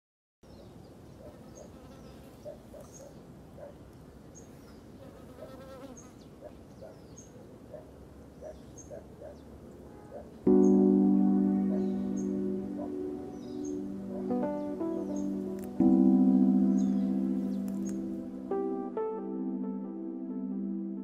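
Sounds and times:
bird chirping: 0.4 - 5.1, 5.8 - 18.6
flying insects buzzing: 1.4 - 2.6, 4.5 - 6.3.

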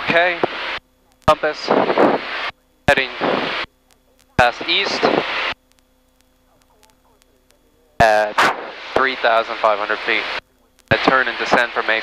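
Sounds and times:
faint steady hum: 0.0 - 12.0
radio transmission click: 0.1 - 12.0
voice speaking over radio: 1.1 - 2.0, 2.9 - 5.3, 6.4 - 12.0
voice over intercom: 2.9 - 5.3, 6.5 - 12.0.

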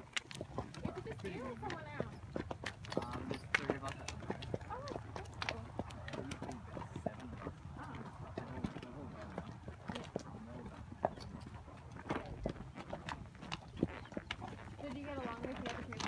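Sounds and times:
horse hooves clip-clopping on dirt: 0.0 - 16.0.

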